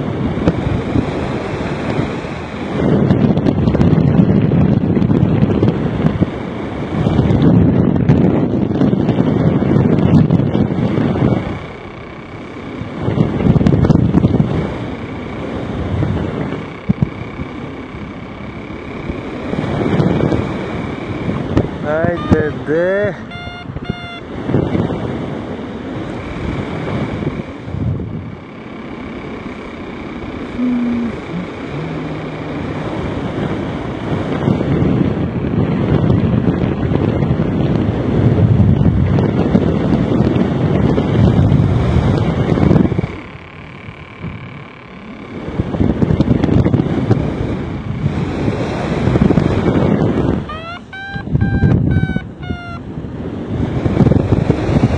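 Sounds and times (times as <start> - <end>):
wind buffeting microphone: 0.0 - 54.9
electronic beeps: 21.9 - 24.3, 50.4 - 52.8.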